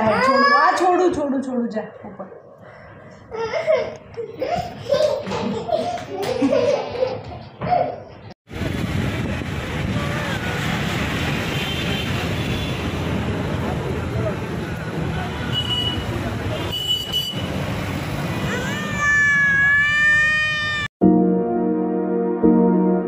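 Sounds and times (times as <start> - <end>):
child's high voice: 0.0 - 0.8, 18.4 - 20.9.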